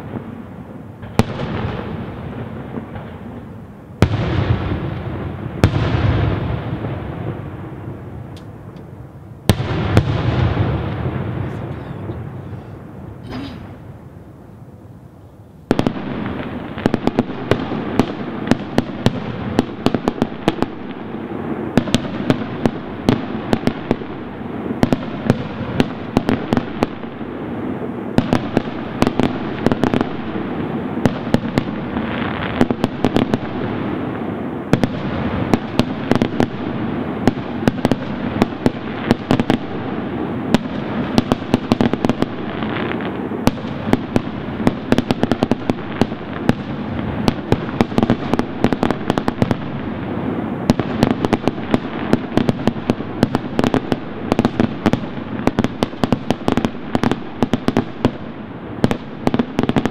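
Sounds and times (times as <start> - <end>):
firework bangs and crackles: 0.0 - 14.2, 15.6 - 59.9.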